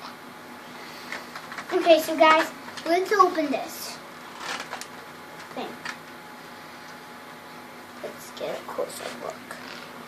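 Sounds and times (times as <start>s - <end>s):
plastic packaging rustling: 4.3s - 6.0s.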